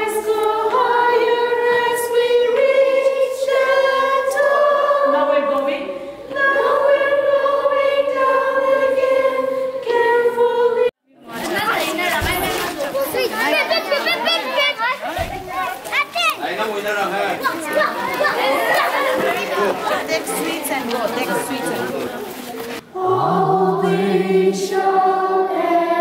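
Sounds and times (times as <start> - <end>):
children singing together: 0.0 - 14.4, 17.5 - 21.6, 22.8 - 26.0
children chattering: 11.1 - 22.8.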